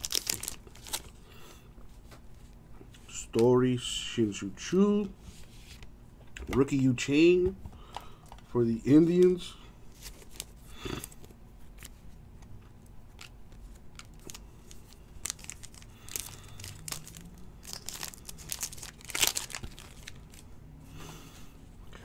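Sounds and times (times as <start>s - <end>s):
plastic wrapper crinkling and tearing: 0.0s - 1.2s, 9.9s - 10.6s, 13.1s - 20.5s.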